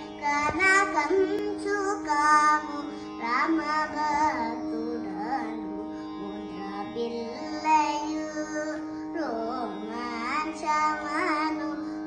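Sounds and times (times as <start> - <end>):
girl singing a melody: 0.0 - 12.0.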